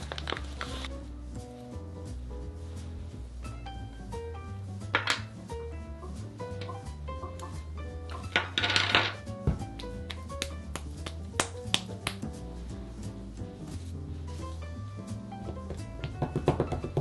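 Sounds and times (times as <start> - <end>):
rustling: 0.0 - 3.5
soft plucked music with bass: 0.0 - 17.0
taps and clicks of hands: 9.4 - 12.4, 15.5 - 17.0.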